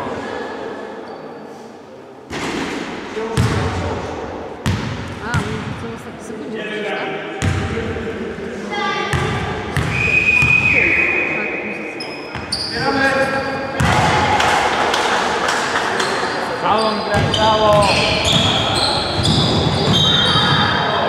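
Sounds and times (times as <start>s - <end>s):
basketball bouncing in hall: 2.3s - 5.9s, 7.4s - 8.0s, 9.1s - 10.9s, 13.7s - 15.2s, 17.0s - 21.0s.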